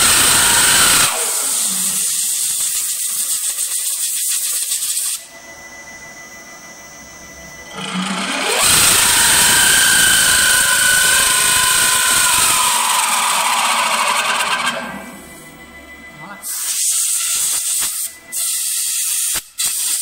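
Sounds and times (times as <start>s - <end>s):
lathe spindle running: 0.0s - 3.0s, 5.2s - 16.4s
cutter hissing into wood: 0.0s - 5.2s, 8.4s - 14.9s, 16.5s - 20.0s.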